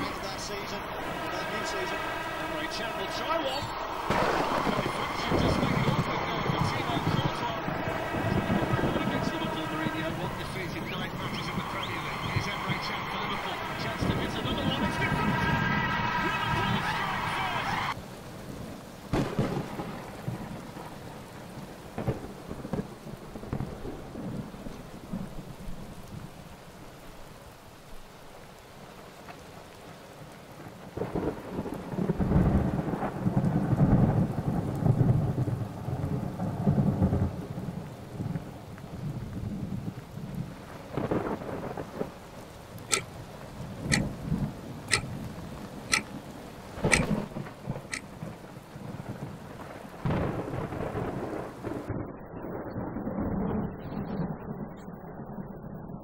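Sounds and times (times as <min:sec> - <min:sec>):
thunder rolling: 0:00.0 - 0:21.3, 0:31.0 - 0:42.2, 0:42.8 - 0:56.0
steady rain: 0:00.0 - 0:56.0
sharp ticks: 0:42.9 - 0:43.1, 0:45.9 - 0:46.1, 0:46.8 - 0:47.2.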